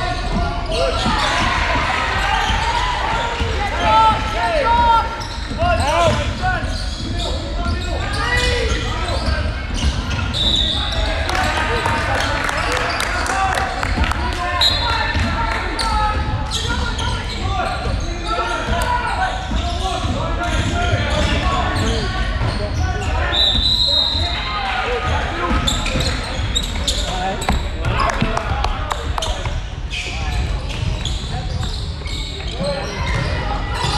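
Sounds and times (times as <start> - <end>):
background chatter and calls: 0.0 - 33.9
sneakers squeaking on floor: 0.0 - 33.9.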